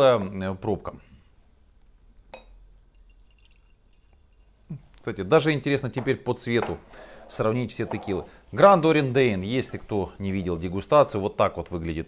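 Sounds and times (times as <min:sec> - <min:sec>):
glass clink: 0:02.3 - 0:04.6
liquid trickling into glass: 0:02.3 - 0:04.6.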